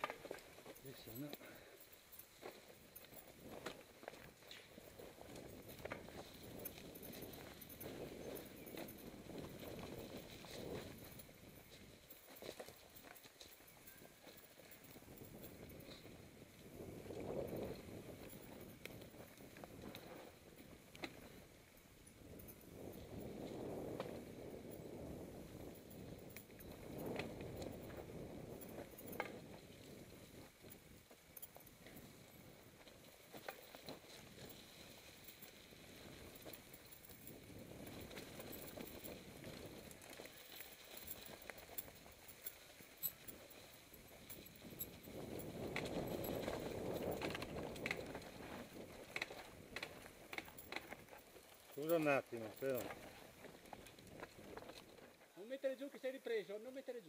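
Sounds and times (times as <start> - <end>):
bike rattling and clicking: 0.0 - 55.3
tyres crunching over dirt and leaves: 26.5 - 55.4.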